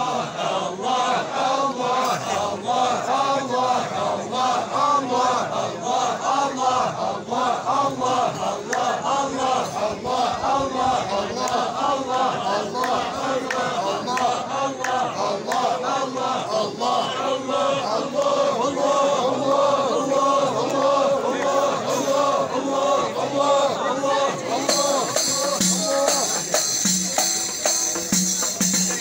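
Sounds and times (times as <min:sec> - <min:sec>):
men chanting in unison: 0:00.0 - 0:29.0.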